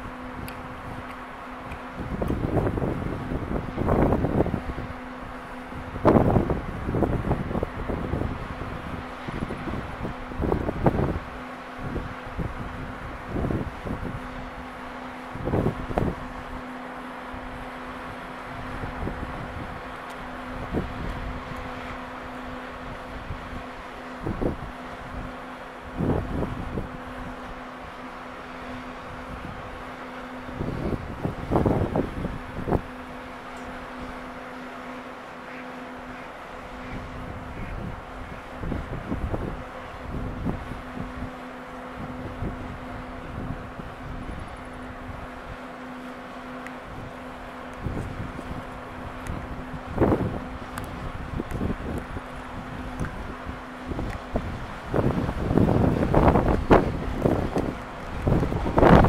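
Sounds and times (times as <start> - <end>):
wind buffeting microphone: 0.0 - 34.8, 36.1 - 45.7, 46.5 - 59.0
faint steady hum: 0.0 - 59.0.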